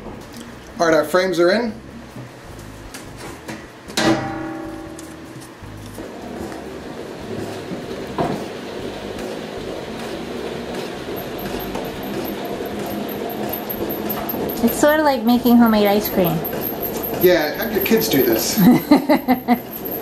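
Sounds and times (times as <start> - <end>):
metal clank: 3.9 - 5.3
honey extractor whirring rattle: 5.7 - 20.0.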